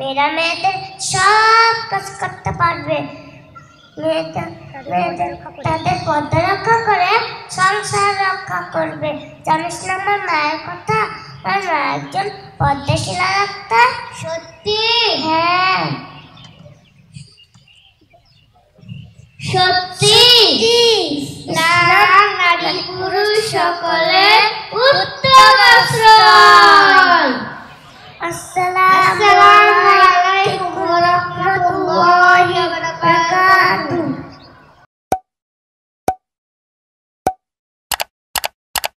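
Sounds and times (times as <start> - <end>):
child singing into microphone: 4.0 - 16.1, 19.4 - 34.3
quick double clicks: 37.9 - 39.0.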